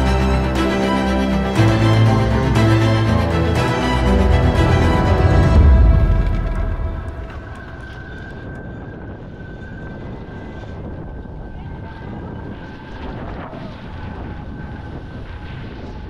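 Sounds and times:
low rumble: 0.0s - 9.5s.

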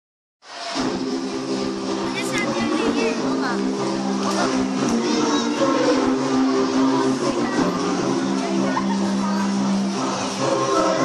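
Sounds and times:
crowded hall noise: 0.4s - 11.0s
worship song music: 0.7s - 11.0s.

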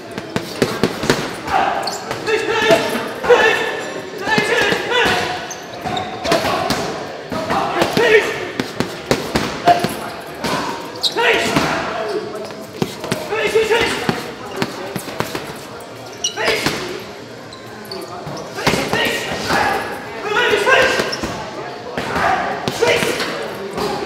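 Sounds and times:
boxing gloves hitting punch bags: 0.0s - 3.5s, 4.3s - 10.8s, 12.7s - 15.7s
voices talking in echoing hall: 0.0s - 24.0s.

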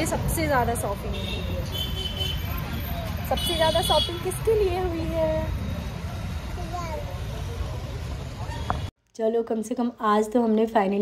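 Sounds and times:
passing cars and scooters: 0.0s - 8.9s.

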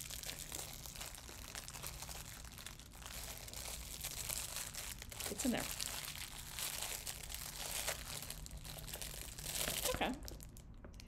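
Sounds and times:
plastic packaging crinkling: 0.0s - 10.8s.

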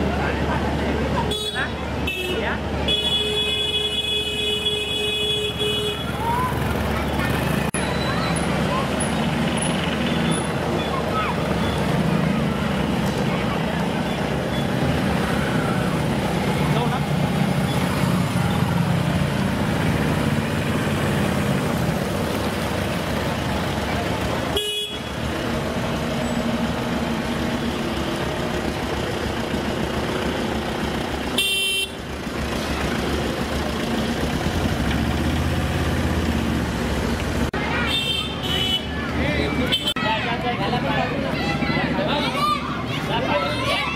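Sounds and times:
vehicle engines running: 0.0s - 43.9s
vehicle horn honking: 1.3s - 6.2s, 24.6s - 25.2s, 31.4s - 32.0s, 37.9s - 39.0s.

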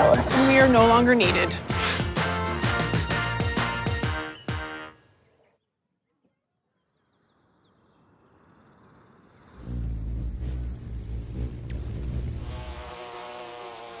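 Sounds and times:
hummingbird wings buzzing: 9.2s - 14.0s
bee buzzing: 9.4s - 14.0s
loud low hum: 9.5s - 13.0s.

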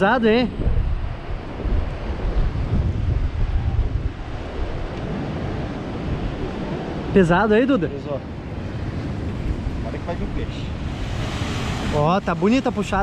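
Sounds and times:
wind buffeting microphone: 0.0s - 13.0s
sea surf breaking: 4.2s - 13.0s.

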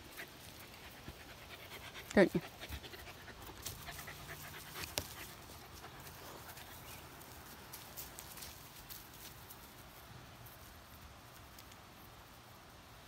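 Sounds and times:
small dog panting: 0.0s - 7.4s.

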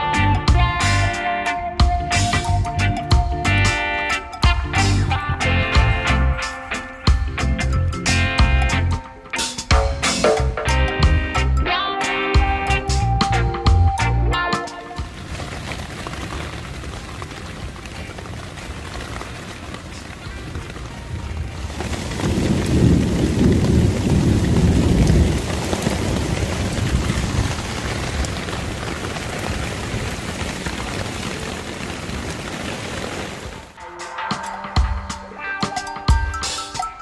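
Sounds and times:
rain falling on a tent: 14.8s - 33.8s
thunder rumbling: 15.0s - 33.8s.

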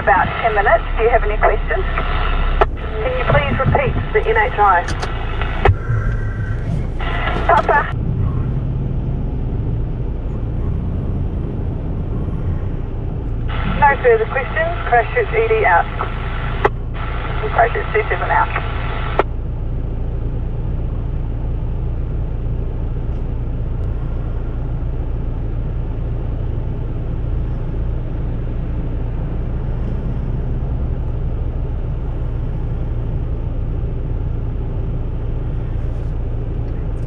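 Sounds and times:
vehicle engine idling: 0.0s - 37.0s.

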